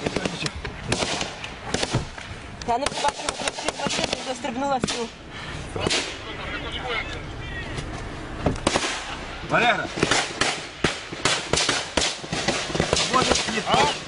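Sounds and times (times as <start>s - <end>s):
gunfire cracks: 0.0s - 5.1s, 5.8s - 6.2s, 8.6s - 9.2s, 9.9s - 14.0s
men shouting: 13.1s - 14.0s.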